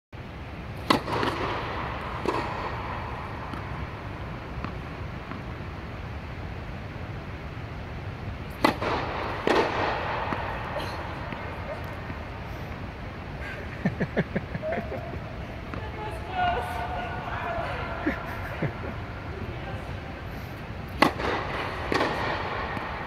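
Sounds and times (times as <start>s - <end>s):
steady low hum: 0.2s - 23.0s
tennis balls struck by rackets: 0.5s - 13.4s, 20.5s - 23.0s.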